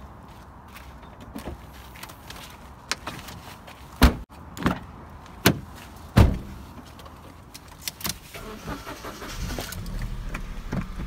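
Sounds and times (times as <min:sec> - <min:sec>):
car door thuds: 0:04.0 - 0:04.8, 0:06.2 - 0:06.5
car engine rumbling: 0:08.4 - 0:11.0.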